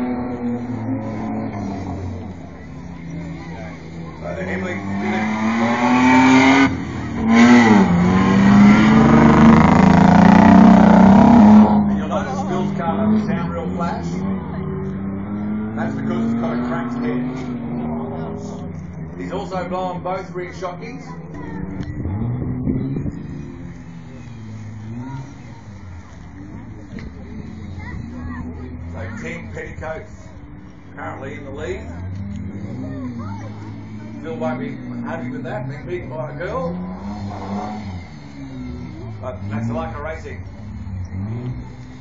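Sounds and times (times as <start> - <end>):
truck engine at high revs: 0.0 - 42.0.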